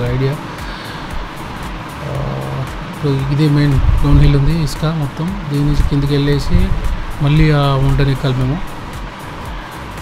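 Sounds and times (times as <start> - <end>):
background music: 0.0 - 10.0
motorcycle engine running: 0.0 - 10.0
wind noise on microphone: 3.6 - 4.7, 5.6 - 8.1.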